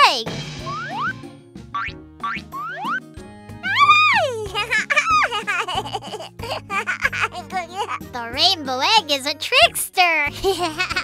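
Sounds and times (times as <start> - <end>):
children's background music: 0.0 - 11.0
cartoon boing effects: 0.6 - 1.2, 1.8 - 3.0.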